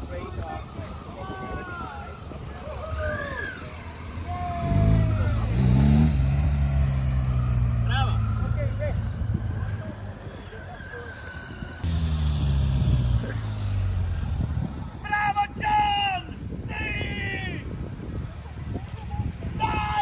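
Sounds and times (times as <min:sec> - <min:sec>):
motorcycle engine revving: 0:02.2 - 0:15.0.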